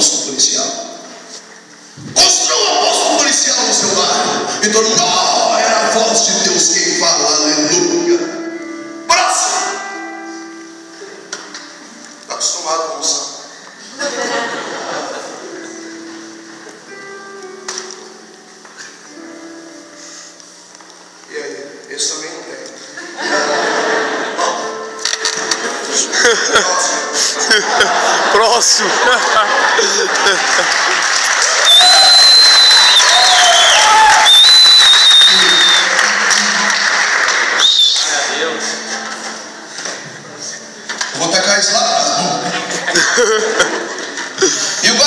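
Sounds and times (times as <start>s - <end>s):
faint voices in a hall: 0.0s - 32.0s, 35.3s - 45.0s.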